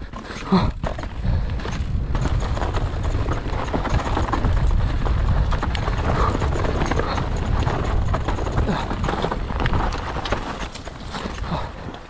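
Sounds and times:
bike clattering over rough ground: 0.0s - 12.0s
bike tyre noise: 0.0s - 12.0s
wind rumble on microphone: 0.0s - 12.0s.

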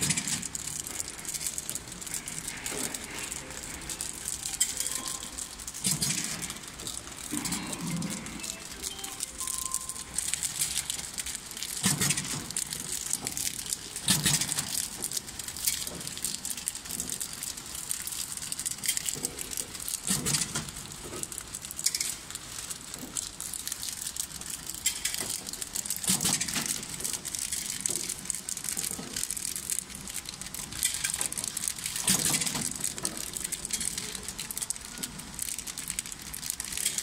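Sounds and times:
packing machine rattling: 0.0s - 37.0s.

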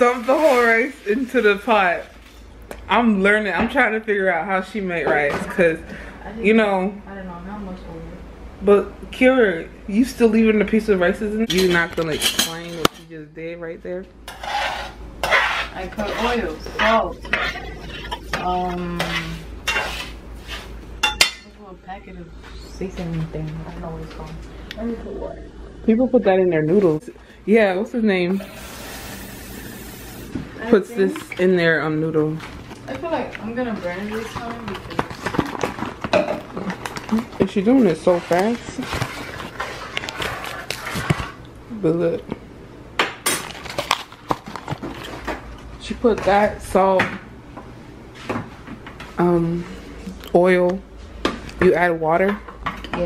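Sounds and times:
kitchen utensils knocking: 11.4s - 13.1s.

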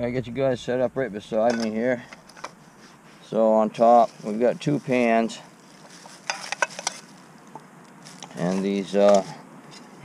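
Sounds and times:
small metal pans clinking: 6.2s - 7.1s.

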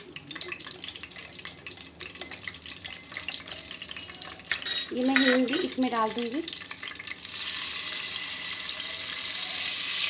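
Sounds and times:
seeds sizzling in hot oil: 0.0s - 10.0s.

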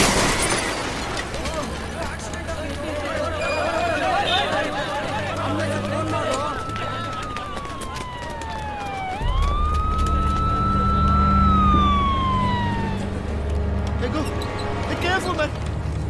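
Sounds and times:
siren wailing: 5.0s - 13.8s.

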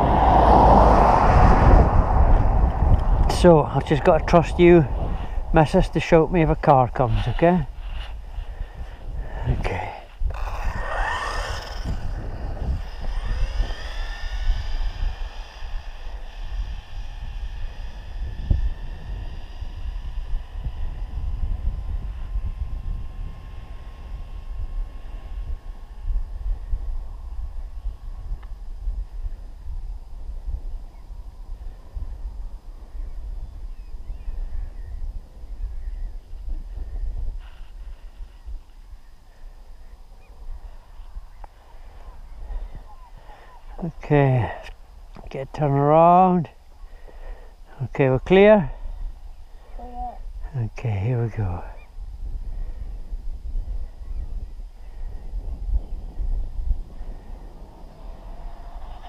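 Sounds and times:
rising whine: 0.0s - 45.3s
wind rumbling on microphone: 0.0s - 59.0s.

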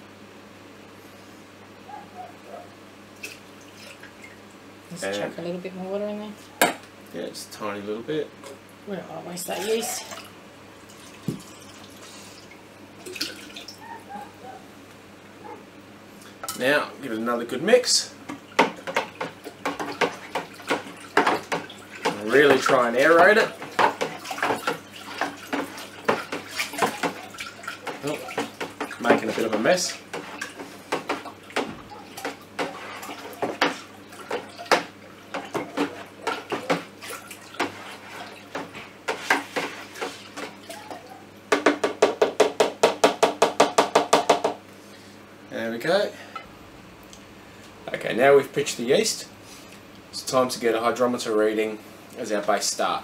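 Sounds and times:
liquid sloshing in a bucket: 9.5s - 14.0s, 18.3s - 41.2s
spoon knocking in plastic bucket: 41.5s - 44.6s.

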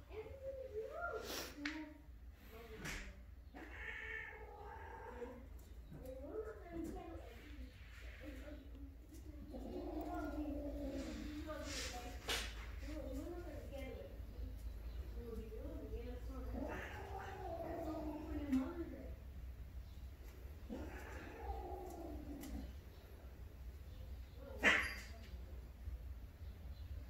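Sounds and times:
cat calling: 3.5s - 6.5s, 9.1s - 11.7s, 16.3s - 18.9s, 20.6s - 22.8s, 24.4s - 25.2s.

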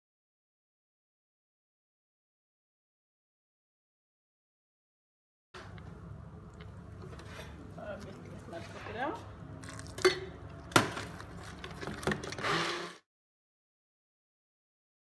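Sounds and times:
stick blender motor hum: 12.0s - 13.0s.

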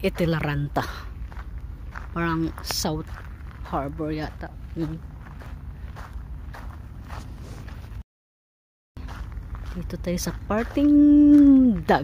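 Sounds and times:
footsteps on gravel: 0.0s - 8.0s, 9.0s - 12.0s.

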